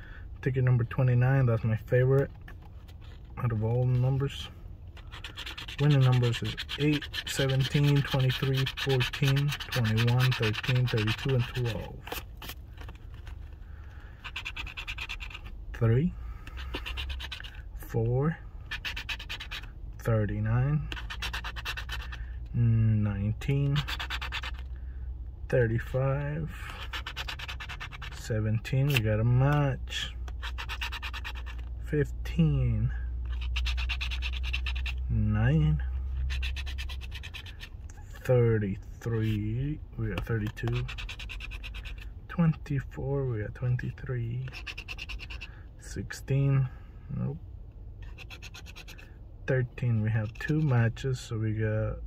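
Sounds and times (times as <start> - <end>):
coin scratching lottery ticket: 2.8 - 22.4, 23.2 - 24.7, 25.7 - 38.3, 39.0 - 42.8, 43.4 - 45.5, 48.0 - 49.2, 49.8 - 51.0
card handling: 4.9 - 15.6, 40.1 - 42.1.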